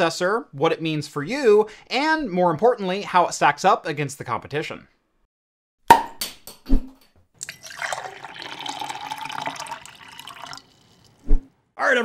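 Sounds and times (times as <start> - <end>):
liquid pouring into glass: 7.4 - 11.3.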